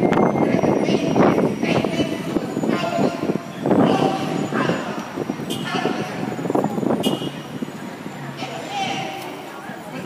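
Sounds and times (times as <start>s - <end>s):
crowd of protesters chattering: 0.0s - 10.0s
street traffic: 0.0s - 10.0s.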